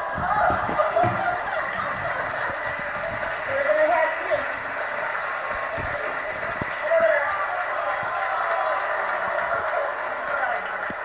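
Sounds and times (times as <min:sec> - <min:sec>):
muffled television voices: 0:00.0 - 0:11.0.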